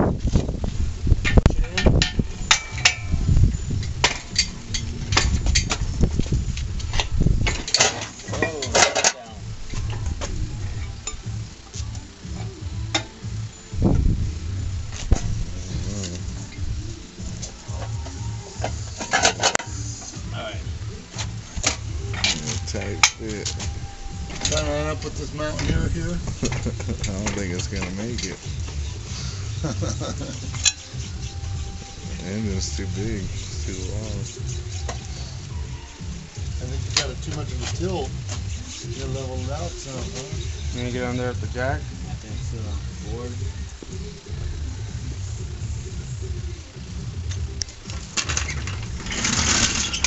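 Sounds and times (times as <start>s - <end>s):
low rumble: 12.7s - 18.4s.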